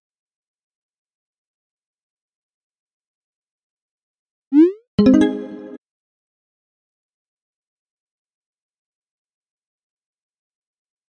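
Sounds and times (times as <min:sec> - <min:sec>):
rising electronic chirp: 0:04.6 - 0:05.8.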